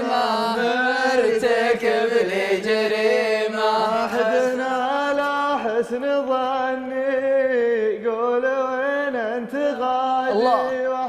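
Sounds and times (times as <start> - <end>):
man chanting poetry: 4.1 - 11.0.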